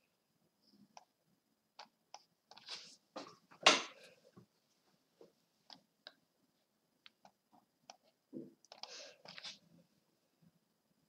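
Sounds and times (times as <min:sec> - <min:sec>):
computer mouse clicks: 0:08.6 - 0:09.5.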